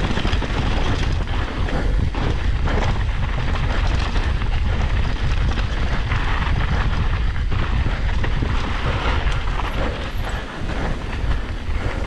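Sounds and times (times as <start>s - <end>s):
bike chain and frame rattling: 0.0s - 12.0s
tyres rumbling over dirt: 0.0s - 12.0s
wind buffeting microphone: 0.0s - 12.0s.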